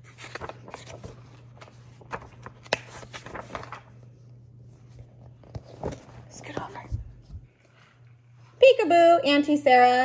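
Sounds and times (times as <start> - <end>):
paper rustling: 0.0 - 8.0
low steady hum: 0.0 - 10.0.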